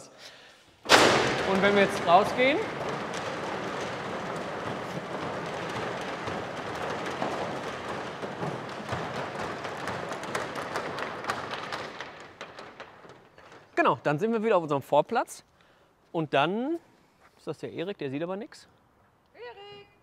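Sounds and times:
slats rattling and clicking: 0.9 - 14.4
metal roller shutter rolling up: 0.9 - 14.6.

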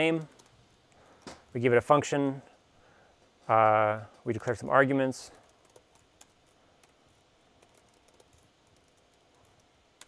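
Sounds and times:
typing on computer keyboard: 0.1 - 0.5, 5.3 - 7.0, 7.6 - 9.7.

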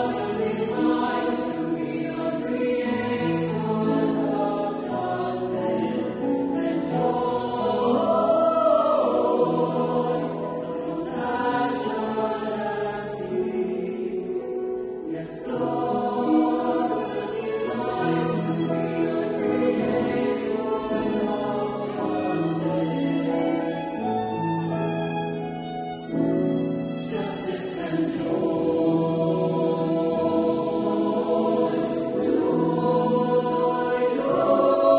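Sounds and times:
choir singing a hymn: 0.0 - 34.9.

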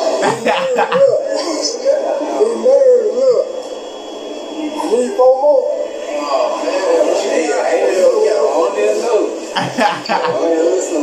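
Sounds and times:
thin played-back voices: 0.0 - 11.0.

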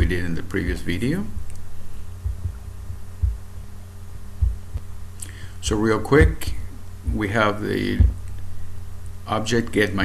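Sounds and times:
low electrical hum: 0.0 - 10.0
dull low thumps: 1.4 - 5.1, 5.7 - 7.3, 8.0 - 8.3.

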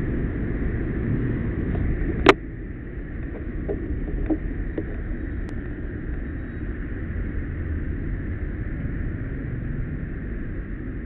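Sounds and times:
street traffic rumble: 0.0 - 11.0
wind on microphone: 0.0 - 11.0.

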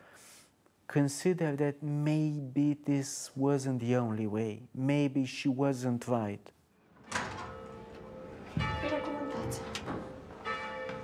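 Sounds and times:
church bell ringing: 7.1 - 11.0.

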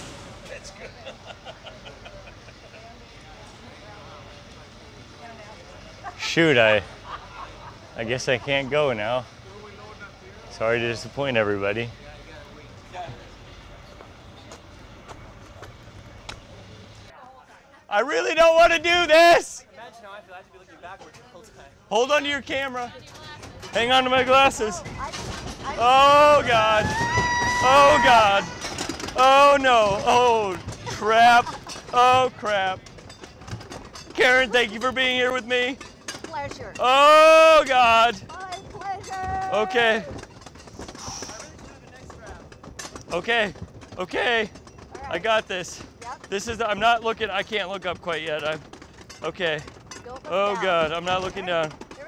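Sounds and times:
roller coaster clicking on track: 0.0 - 17.1, 21.1 - 52.0
rider murmuring: 0.5 - 13.9
rider breathing: 40.7 - 41.6.

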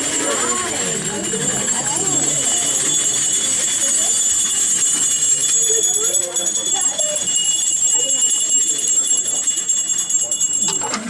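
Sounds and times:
small metal bells jingling: 0.0 - 11.0
voices of procession: 0.0 - 11.0.

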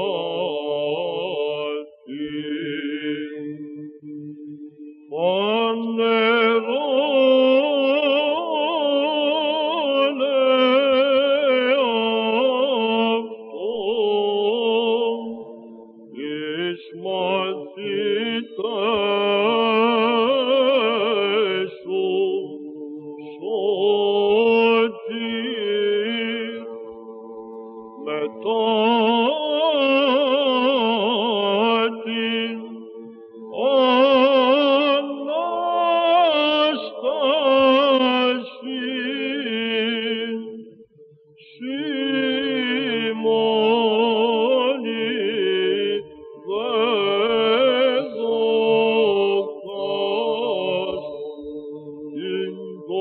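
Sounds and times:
man chanting: 0.0 - 53.0.

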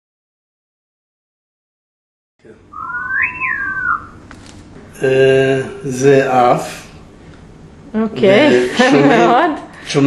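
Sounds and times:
gliding electronic whistle tone: 2.7 - 4.2
low steady electronic tone: 2.7 - 4.3.

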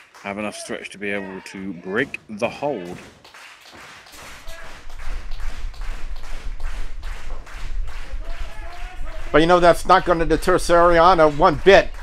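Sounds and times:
rhythmic clapping in unison: 0.0 - 0.8, 1.9 - 12.0
low hum: 4.2 - 11.2.

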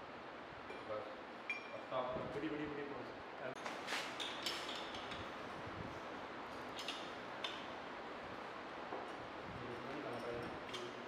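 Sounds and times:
steady background hiss: 0.0 - 11.0
light metal clicks and clinks: 6.6 - 7.7, 9.0 - 11.0.

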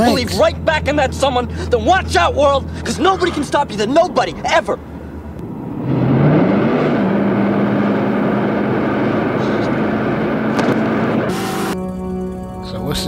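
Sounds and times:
music: 0.0 - 4.4, 10.6 - 13.0
road and wind noise: 0.0 - 11.8
car engine revving hard: 5.0 - 11.8.

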